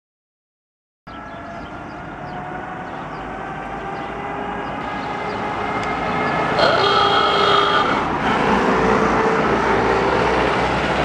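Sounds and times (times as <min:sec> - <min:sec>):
car engines approaching: 0:01.1 - 0:11.0.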